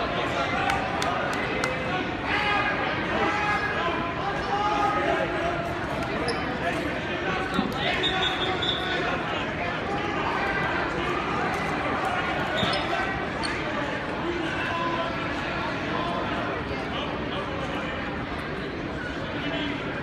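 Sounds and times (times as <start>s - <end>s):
crowd voices echoing in gymnasium: 0.0s - 20.0s.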